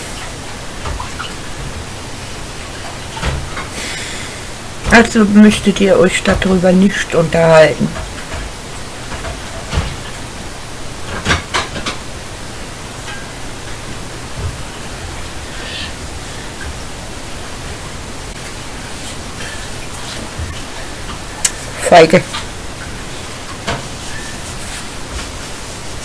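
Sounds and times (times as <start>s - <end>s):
static hiss: 0.0s - 26.0s.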